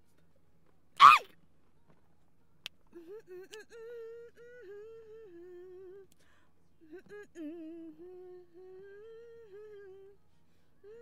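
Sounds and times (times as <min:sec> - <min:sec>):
person humming a melody: 0:02.9 - 0:06.1, 0:06.8 - 0:10.2.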